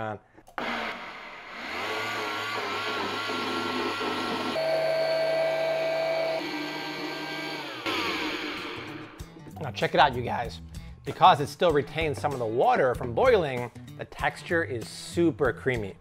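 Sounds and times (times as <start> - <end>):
blender motor running: 0.6 - 9.2.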